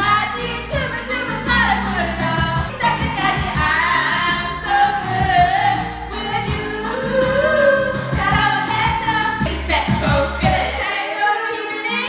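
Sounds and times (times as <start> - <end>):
karaoke backing track: 0.0 - 12.0
women singing into microphones: 0.0 - 12.0
steady drum beat: 2.1 - 4.4, 5.0 - 10.8.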